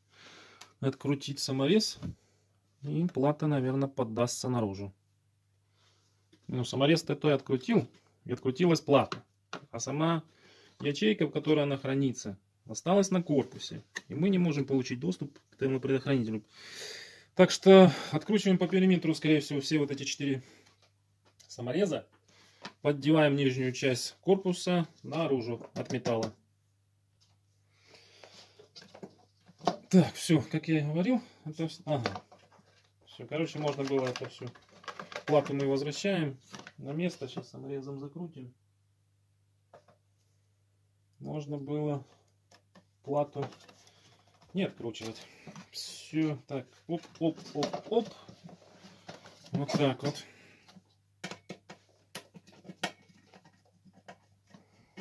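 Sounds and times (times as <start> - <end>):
plastic clicks and creaks: 32.0 - 35.8
plastic scraping rustle: 32.0 - 36.8, 43.3 - 50.8.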